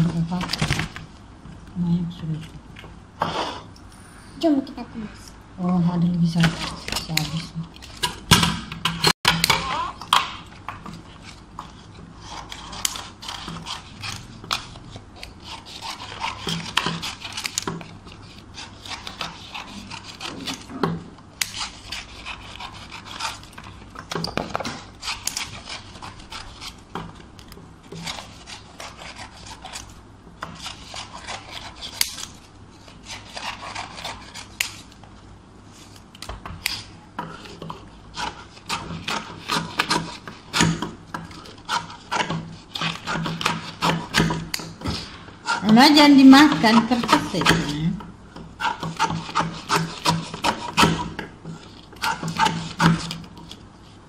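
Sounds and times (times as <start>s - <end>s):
scissors snipping paper: 6.4s - 20.7s, 21.4s - 35.0s, 35.8s - 47.8s.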